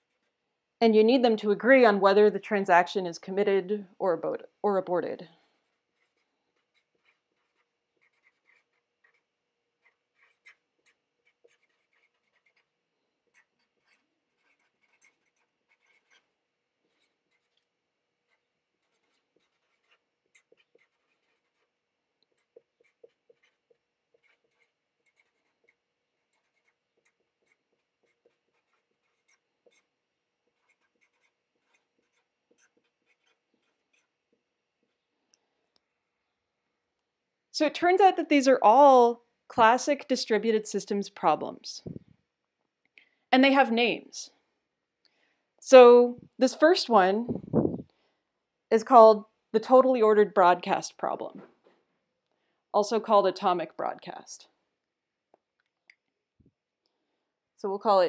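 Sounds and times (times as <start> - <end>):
marker scratching on paper: 0.0 - 0.4, 5.5 - 35.1.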